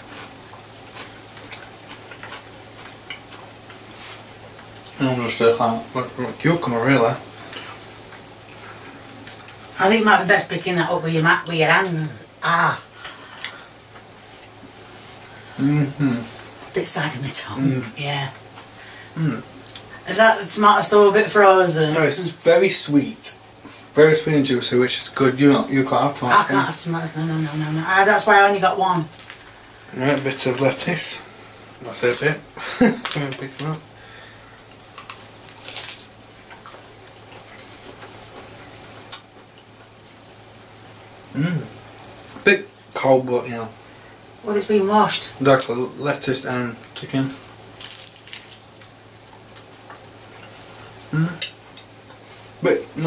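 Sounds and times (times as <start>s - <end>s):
person chewing: 0.0s - 4.2s, 34.6s - 38.5s, 47.8s - 48.8s
low steady hum: 0.0s - 53.0s.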